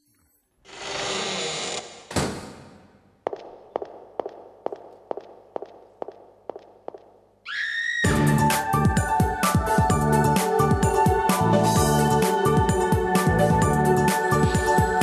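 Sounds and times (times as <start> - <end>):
music: 8.0 - 15.0.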